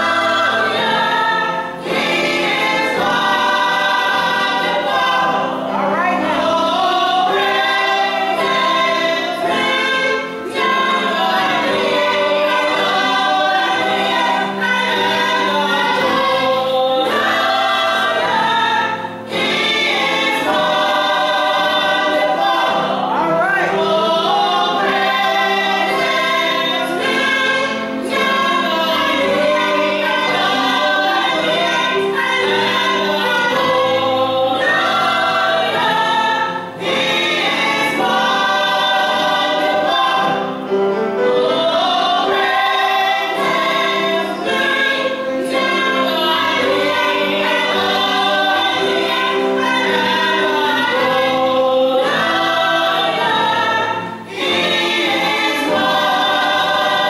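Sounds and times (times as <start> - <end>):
group singing gospel song: 0.0 - 57.0.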